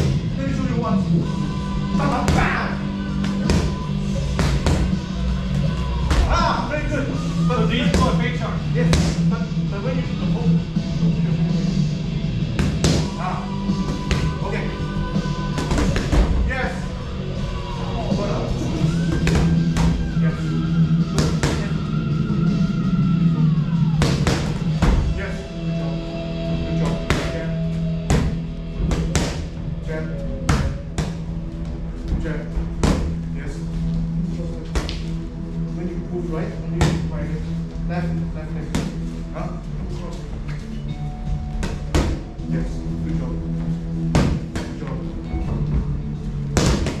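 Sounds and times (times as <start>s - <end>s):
music playing: 0.0s - 47.0s
boxing gloves smacking pads: 24.0s - 25.1s, 46.6s - 47.0s.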